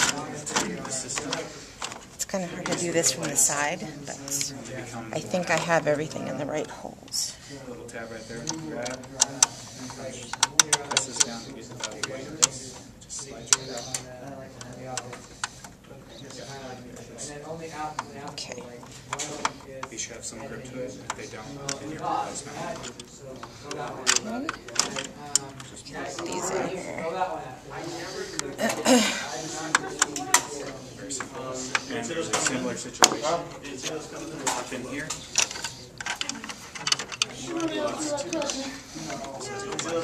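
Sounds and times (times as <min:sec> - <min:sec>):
soft voices: 0:00.0 - 0:40.0
person speaking: 0:26.0 - 0:27.2
plastic parts clicking and snapping: 0:32.3 - 0:38.6.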